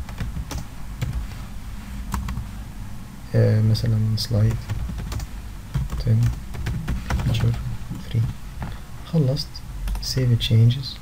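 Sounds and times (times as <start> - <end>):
typing on keyboard: 4.5 - 7.6.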